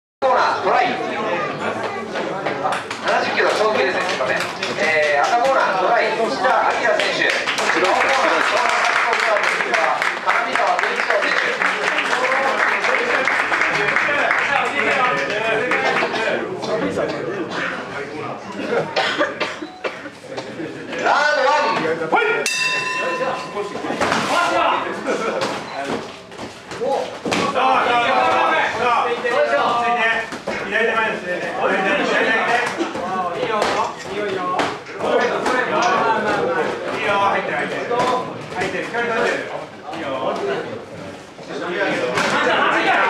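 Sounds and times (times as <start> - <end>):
crowd chatter: 0.2 - 43.0
men talking: 0.2 - 43.0.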